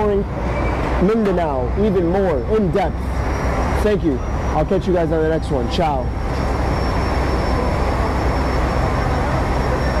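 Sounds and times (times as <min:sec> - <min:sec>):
low engine rumble: 0:00.0 - 0:10.0
faint high whine: 0:02.2 - 0:10.0.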